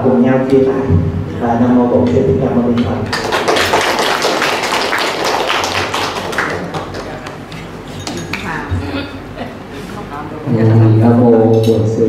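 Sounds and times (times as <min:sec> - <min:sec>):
crowd applauding: 0:03.1 - 0:07.5.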